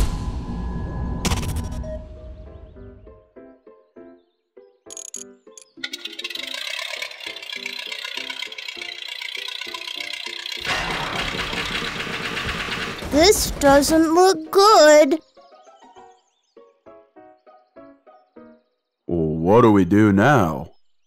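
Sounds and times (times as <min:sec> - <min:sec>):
playful staccato music: 0:05.6 - 0:14.8
cartoon biplane engine drone: 0:05.9 - 0:13.5.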